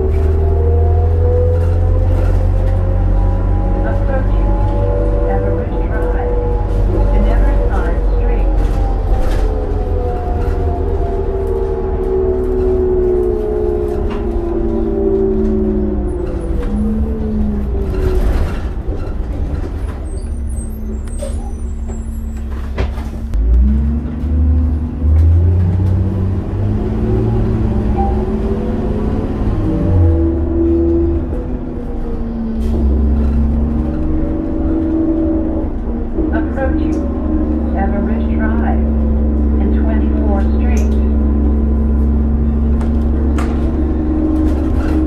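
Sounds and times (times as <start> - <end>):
bus engine and driveline whine: 0.0 - 45.0.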